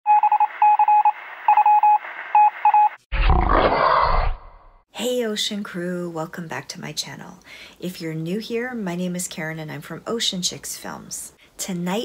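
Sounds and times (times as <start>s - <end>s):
electronic beeps: 0.1s - 3.0s.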